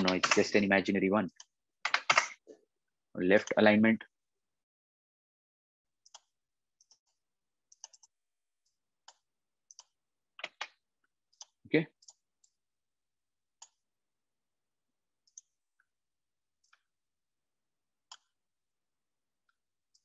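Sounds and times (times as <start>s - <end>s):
computer mouse clicking: 0.0s - 0.5s, 1.4s - 2.4s, 6.0s - 8.2s, 9.0s - 12.6s, 18.1s - 18.3s.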